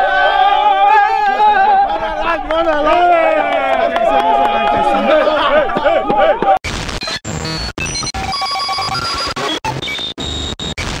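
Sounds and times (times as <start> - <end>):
harsh static: 6.6 - 11.0.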